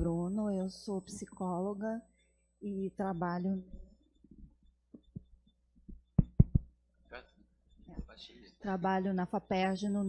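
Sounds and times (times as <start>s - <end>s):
dull thumps on microphone: 5.9s - 6.7s.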